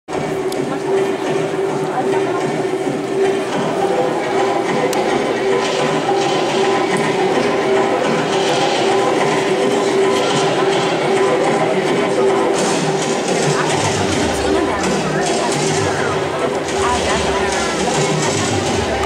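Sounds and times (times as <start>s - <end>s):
sports hall din: 0.1s - 19.0s.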